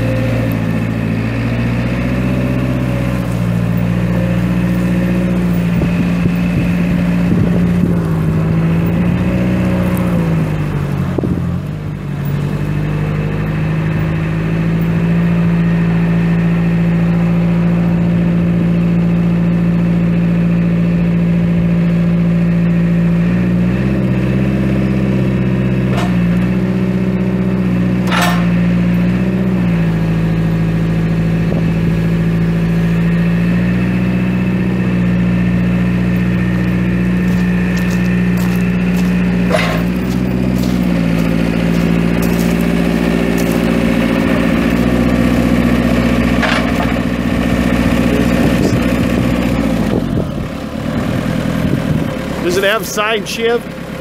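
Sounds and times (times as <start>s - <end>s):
diesel engine running: 0.0s - 54.0s
sharp metallic clanks: 25.9s - 26.4s, 28.0s - 28.6s, 39.4s - 40.8s.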